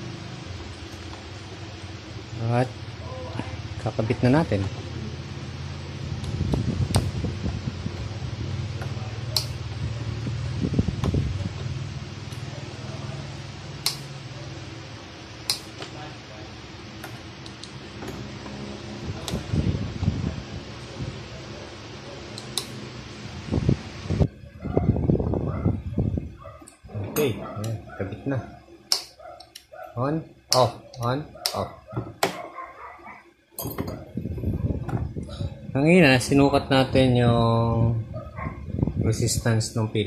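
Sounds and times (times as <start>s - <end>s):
fan-like whir: 0.0s - 40.0s.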